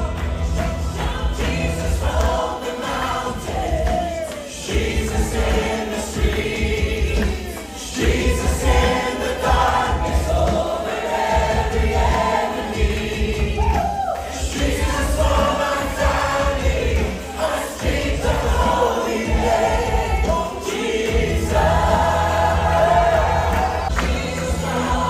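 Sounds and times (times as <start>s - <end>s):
keyboard: 0.0s - 25.0s
singers singing together: 0.0s - 25.0s.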